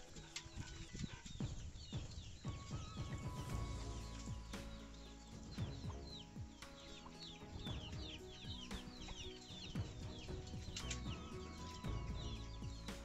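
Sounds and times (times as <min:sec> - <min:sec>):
chickens chirping: 0:00.0 - 0:13.0.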